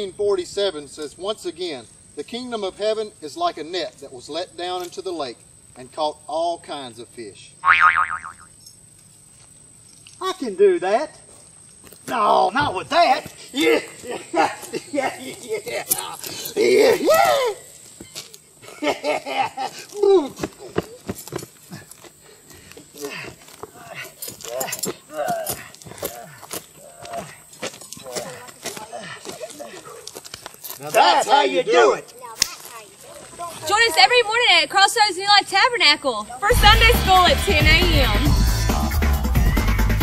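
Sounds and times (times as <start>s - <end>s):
faint outdoor background: 0.0s - 40.0s
wobbling boing-like twang: 7.7s - 8.4s.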